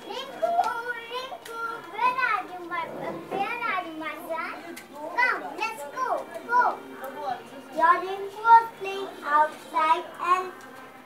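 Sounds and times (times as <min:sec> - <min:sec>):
young children talking: 0:00.0 - 0:11.0.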